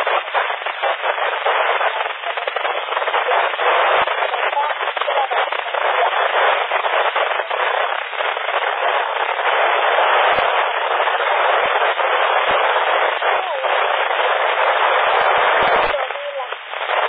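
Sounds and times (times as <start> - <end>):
radio static hiss: 0.0 - 17.0
garbled voice over radio: 3.1 - 6.5, 13.2 - 14.0, 14.8 - 16.6.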